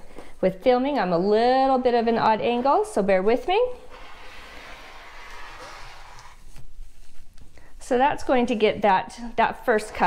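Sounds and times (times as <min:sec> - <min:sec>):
rotary cutter slicing fabric: 0:03.9 - 0:06.4.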